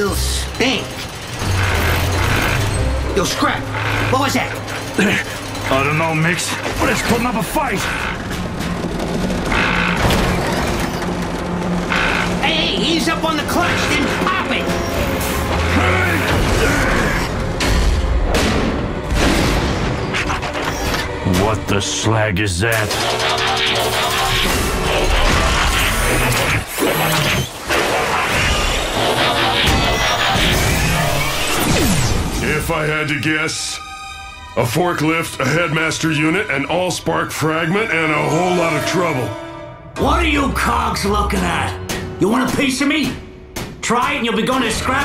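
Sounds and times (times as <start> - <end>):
mechanical rumbling and clanking: 0.0 - 33.3
dramatic background music: 0.0 - 45.0
mechanical metal clanks: 22.7 - 26.8.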